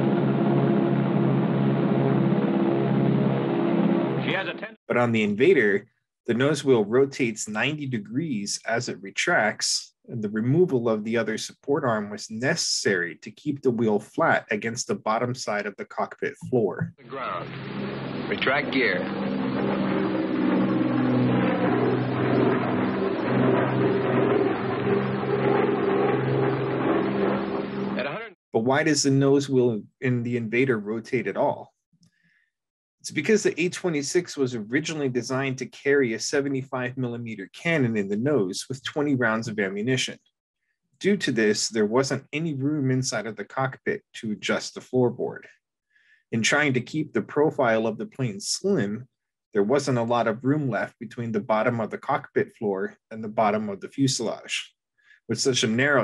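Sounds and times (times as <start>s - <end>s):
propeller plane engines droning: 17.6s - 27.9s.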